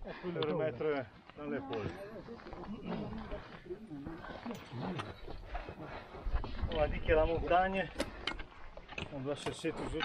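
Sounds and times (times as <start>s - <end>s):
muttered voices: 0.0s - 7.4s
effort grunts: 2.7s - 6.1s.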